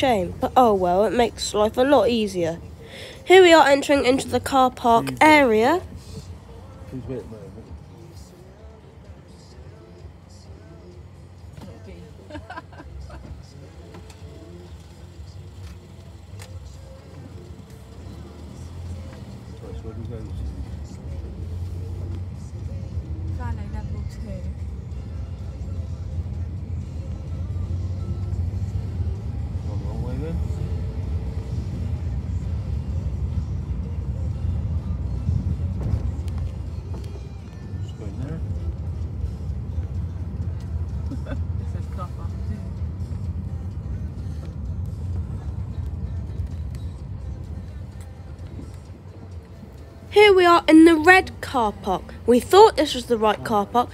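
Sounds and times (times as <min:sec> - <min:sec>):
car engine and tyres rumbling: 0:00.0 - 0:53.9
music: 0:00.0 - 0:53.9.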